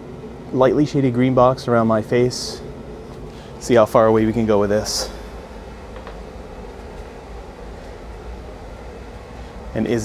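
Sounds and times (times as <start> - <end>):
boiler hum and rumble: 0.0 - 10.0.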